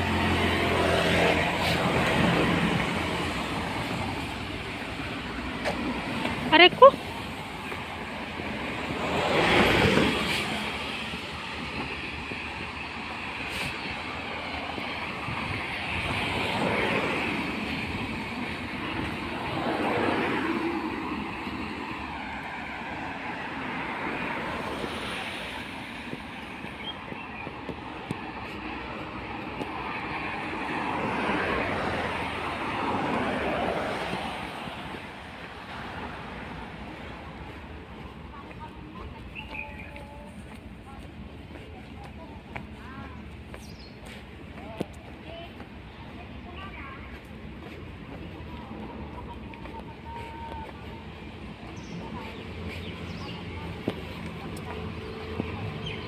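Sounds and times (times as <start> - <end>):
vehicles passing: 0.0 - 56.0.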